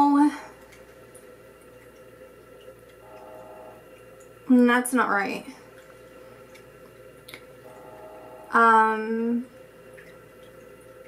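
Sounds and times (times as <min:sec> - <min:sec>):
faint hum and hiss: 0:00.0 - 0:11.0.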